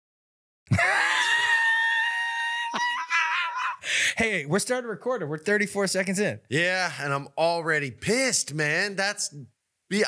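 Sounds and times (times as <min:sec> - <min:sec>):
high-pitched scream: 0:00.7 - 0:03.8.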